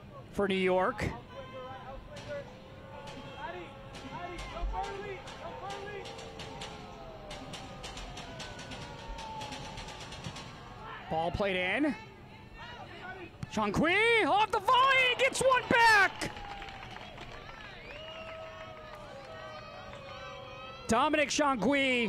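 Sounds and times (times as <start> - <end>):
stadium background noise: 0.0 - 22.0
players shouting: 0.8 - 22.0.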